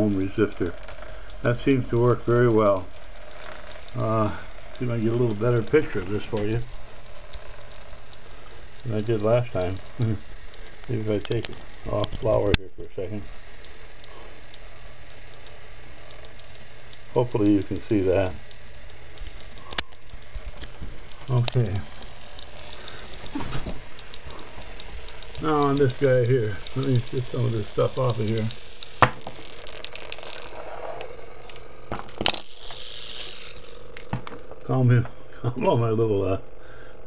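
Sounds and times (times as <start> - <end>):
faint regular ticking: 0.0 - 37.0
motor whirring: 0.0 - 37.0.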